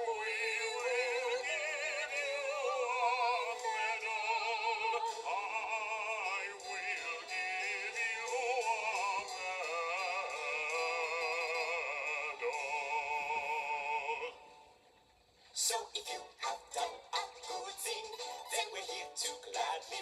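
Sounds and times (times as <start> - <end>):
person singing with vibrato: 0.0 - 14.6, 15.6 - 20.0
musical accompaniment: 0.0 - 20.0.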